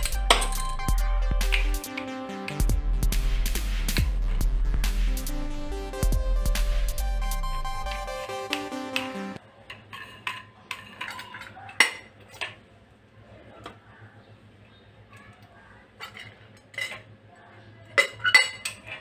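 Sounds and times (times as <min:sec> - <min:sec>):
metal lamp parts clinking: 0:00.0 - 0:01.0.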